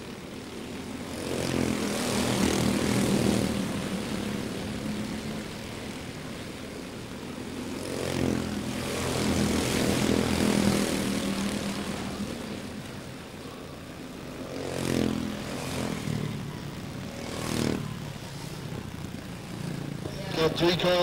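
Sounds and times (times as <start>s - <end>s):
race cars buzzing engines: 0.0s - 21.0s.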